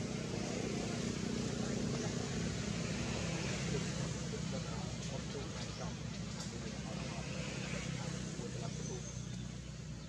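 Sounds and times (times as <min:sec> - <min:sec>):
low outdoor rumble: 0:00.0 - 0:10.0.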